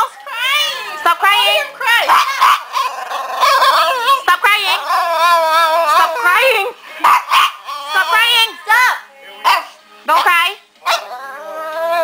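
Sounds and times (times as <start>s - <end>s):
dog whining and yowling: 4.8s - 6.3s, 10.9s - 12.0s.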